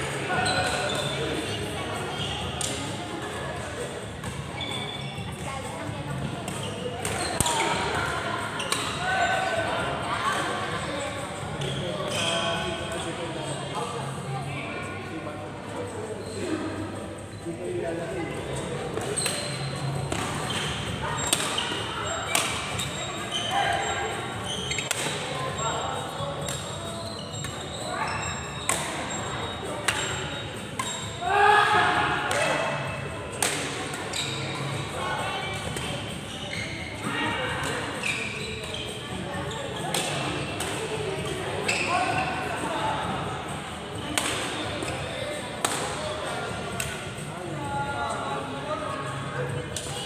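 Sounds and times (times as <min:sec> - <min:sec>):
chatter of people: 0:00.0 - 0:50.0
rackets hitting shuttlecock: 0:20.1 - 0:21.7, 0:22.3 - 0:22.9, 0:24.8 - 0:25.2, 0:28.6 - 0:29.0, 0:33.3 - 0:33.9, 0:39.9 - 0:40.8, 0:44.2 - 0:44.9, 0:45.6 - 0:46.0.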